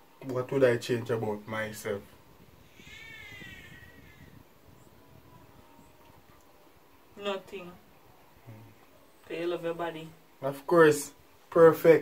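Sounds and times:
high drawn-out animal cry: 2.6 - 4.4.

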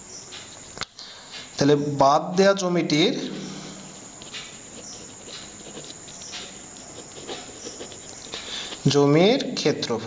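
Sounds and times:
thin high whine: 0.0 - 9.4
pen scratching on paper: 4.0 - 8.9.

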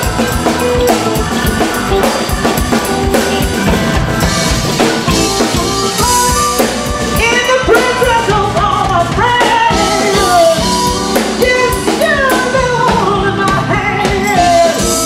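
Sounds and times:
busy drum hits: 0.0 - 13.6
lead guitar line with bending pitch: 0.0 - 15.0
live rock band playing: 0.0 - 15.0.

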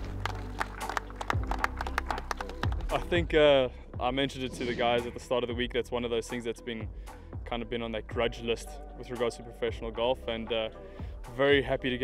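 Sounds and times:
people clapping: 0.0 - 3.2
background music: 0.0 - 12.0.

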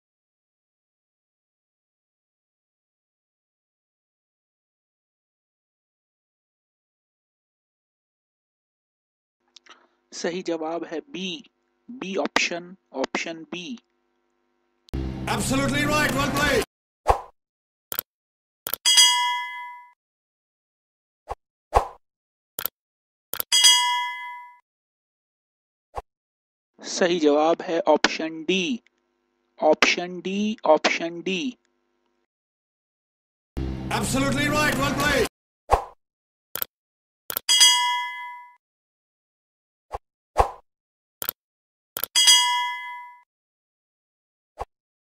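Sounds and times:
bright bell-like ding: 18.9 - 20.0, 23.5 - 24.6, 37.5 - 38.6, 42.2 - 43.2.

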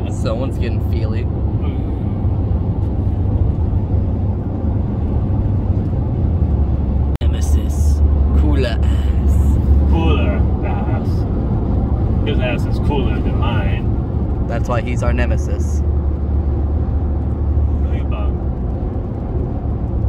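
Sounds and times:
voices in car: 0.0 - 2.5, 7.2 - 15.8, 17.5 - 18.8
road rumble and tyre noise: 0.0 - 20.0.

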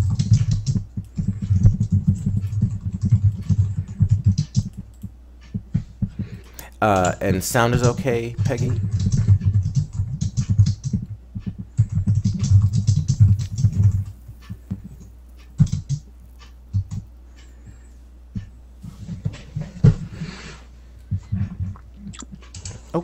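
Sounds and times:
typing on computer keyboard: 0.0 - 5.6, 7.0 - 17.0.

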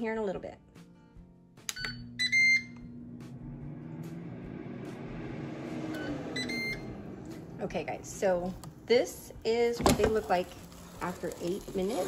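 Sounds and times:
air fryer beeps: 1.7 - 3.4, 5.9 - 6.9
fan humming with air rush: 1.7 - 12.0.

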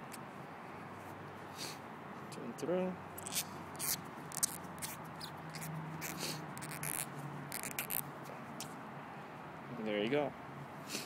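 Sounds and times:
cotton swab scratchy rubbing: 3.2 - 8.8.

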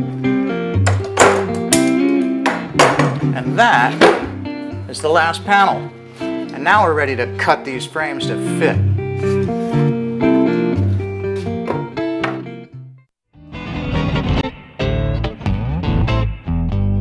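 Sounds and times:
plucked guitar music: 0.0 - 17.0.

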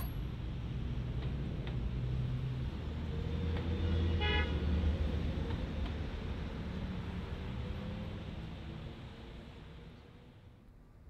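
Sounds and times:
traffic engines rumbling: 0.0 - 11.0.

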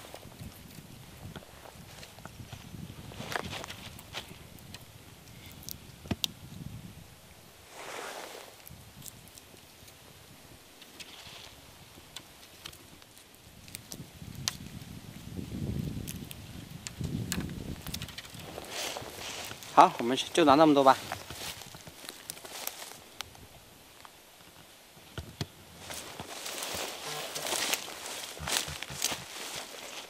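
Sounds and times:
branches and leaves rustling: 0.0 - 30.0
twigs snapping: 3.2 - 6.4, 8.5 - 10.0, 10.8 - 23.4, 25.2 - 30.0.

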